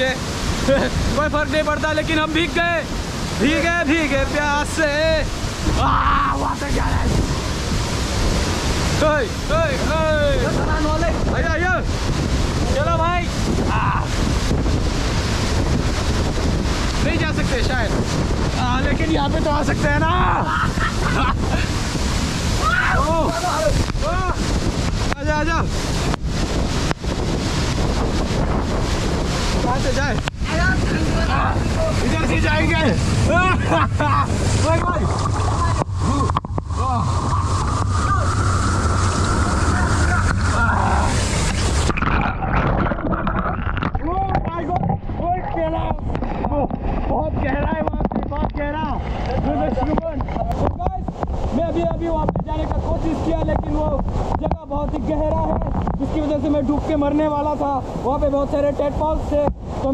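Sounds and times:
spray buffeting microphone: 0.0 - 59.9
waterfall rushing: 0.0 - 59.9
short bubbling tones: 35.0 - 44.1.

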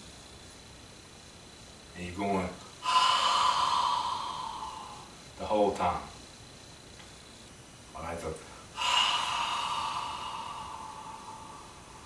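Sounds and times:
man hissing out-breath: 2.8 - 5.2, 8.6 - 12.0.

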